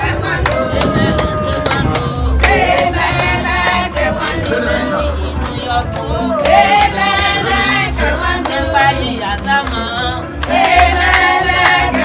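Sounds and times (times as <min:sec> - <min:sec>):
women singing together: 0:00.0 - 0:12.0
hand claps: 0:00.2 - 0:12.0.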